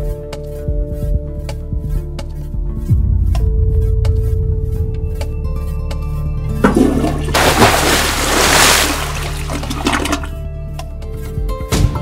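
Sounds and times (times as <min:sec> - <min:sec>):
background music: 0:00.0 - 0:12.0
rushing water like a flush: 0:06.6 - 0:10.4.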